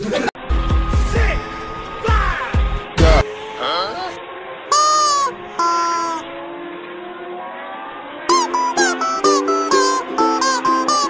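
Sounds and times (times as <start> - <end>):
motorcycle engines: 0.4 - 11.0
short pitched calls: 4.7 - 6.3, 8.3 - 11.0
plucked string music: 8.3 - 11.0.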